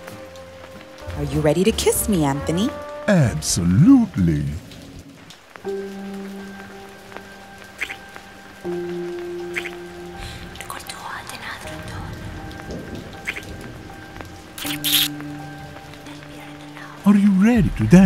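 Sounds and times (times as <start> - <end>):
film score low sustained notes: 0.0 - 18.0
kiss lip-smacking clicks: 14.6 - 15.2.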